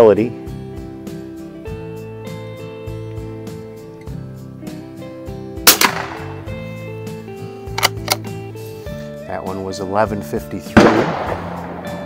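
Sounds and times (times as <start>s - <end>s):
background music: 0.0s - 12.0s
rifle shot crack: 5.6s - 6.8s, 10.8s - 12.0s.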